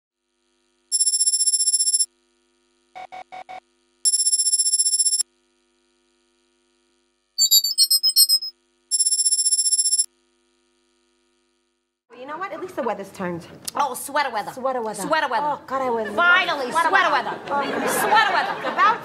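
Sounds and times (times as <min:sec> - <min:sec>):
loud ringing buzzes: 0:00.7 - 0:02.5, 0:04.0 - 0:06.8, 0:07.4 - 0:11.8
jittery electronic beeps: 0:07.4 - 0:10.1
short electronic blips: 0:07.4 - 0:10.1.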